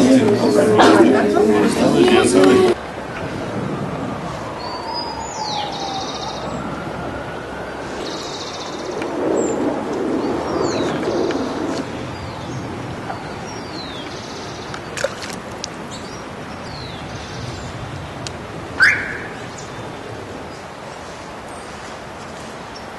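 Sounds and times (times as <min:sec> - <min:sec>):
birds chirping: 0:04.5 - 0:06.9, 0:07.6 - 0:21.9.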